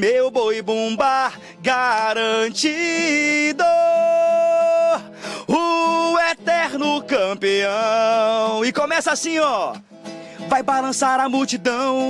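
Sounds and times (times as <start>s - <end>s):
guitar: 0.0s - 12.0s.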